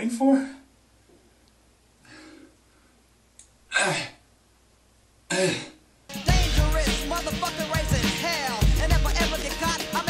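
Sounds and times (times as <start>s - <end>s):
man clearing his throat: 3.7s - 4.2s, 5.3s - 5.8s.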